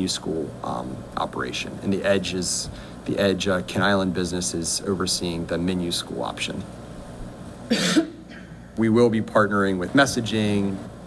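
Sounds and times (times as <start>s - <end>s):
man speaking into a microphone: 0.0s - 6.7s, 8.8s - 10.9s
short cough: 7.7s - 8.6s.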